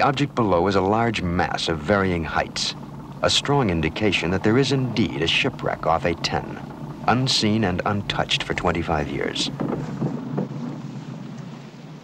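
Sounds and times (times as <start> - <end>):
boat engine running: 0.0 - 12.0.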